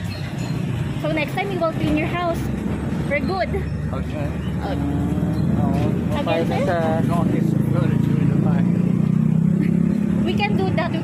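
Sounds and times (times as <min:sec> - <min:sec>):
vehicle engine droning: 0:00.0 - 0:11.0.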